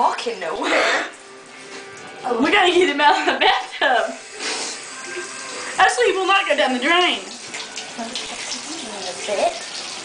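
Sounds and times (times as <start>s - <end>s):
water running into bathtub: 0.0s - 10.0s.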